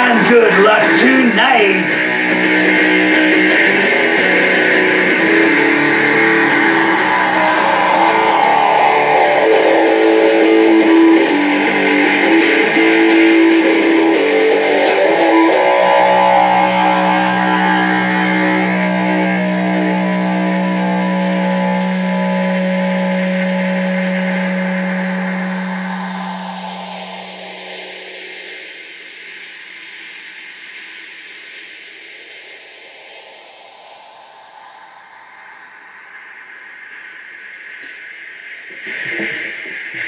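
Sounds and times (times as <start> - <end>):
electric guitar chord ringing: 0.0 - 28.7.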